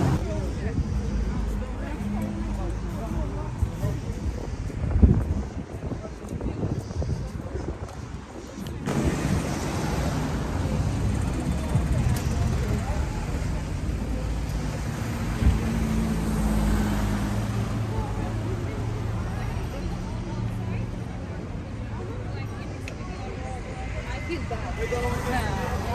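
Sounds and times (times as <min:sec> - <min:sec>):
cars driving past: 0:00.0 - 0:04.8, 0:08.8 - 0:25.9
engine hum: 0:08.7 - 0:25.9.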